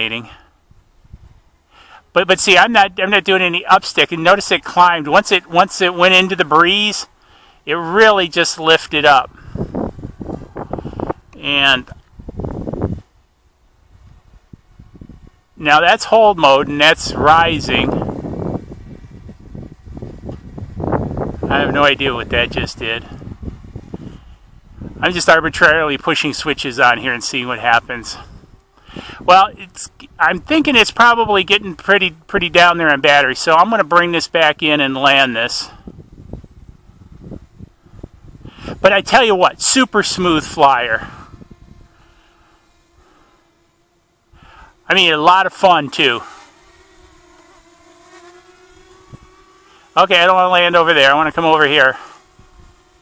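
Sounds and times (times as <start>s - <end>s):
wind buffeting microphone: 0.0s - 1.5s, 8.8s - 27.1s, 27.7s - 32.6s, 35.6s - 42.2s, 48.7s - 49.4s, 51.3s - 52.9s
quadcopter motors humming: 0.0s - 53.0s.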